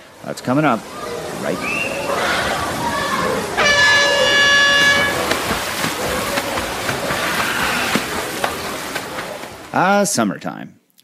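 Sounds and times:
horn tone: 3.6 - 5.3.

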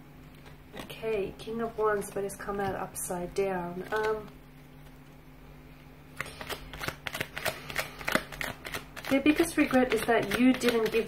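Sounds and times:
cards being shuffled: 6.2 - 11.0.

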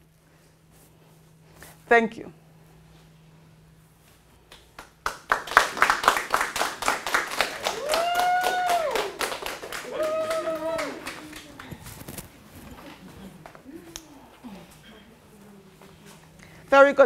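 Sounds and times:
group of people clapping: 4.5 - 12.0
drawn-out cheers: 7.6 - 11.5.

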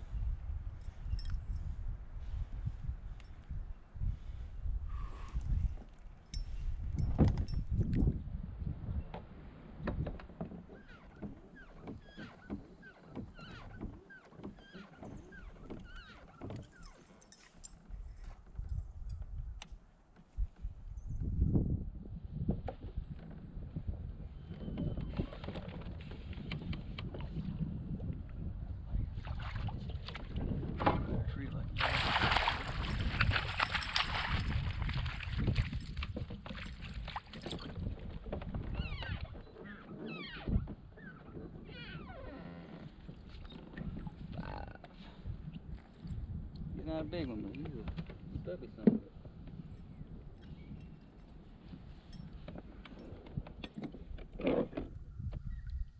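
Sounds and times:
fish splashing at water surface: 31.8 - 35.4.

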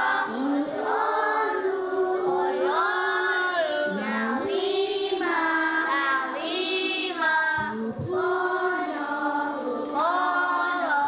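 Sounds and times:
young children singing together: 0.0 - 11.0.

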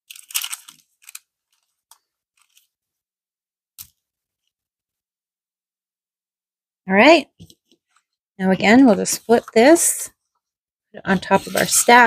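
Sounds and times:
paper crinkling and rustling: 0.0 - 2.8, 11.2 - 12.0.

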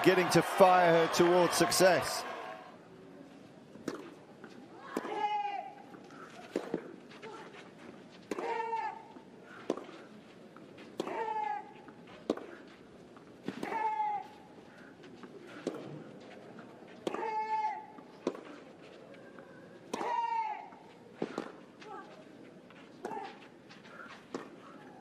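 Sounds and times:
racquet striking tennis ball: 19.9 - 20.3.

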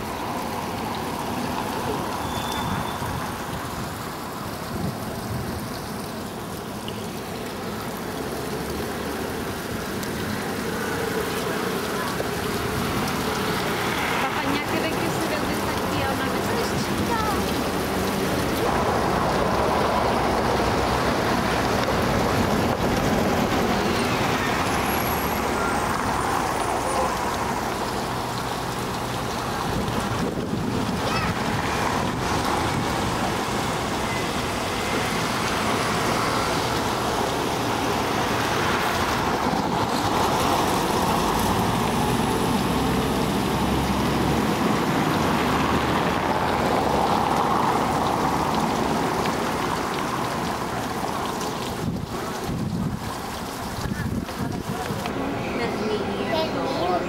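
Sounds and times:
road traffic noise: 0.0 - 57.0.

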